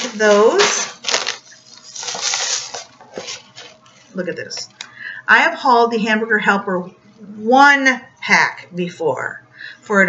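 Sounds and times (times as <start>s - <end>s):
plastic packaging crinkling: 0.0s - 4.0s.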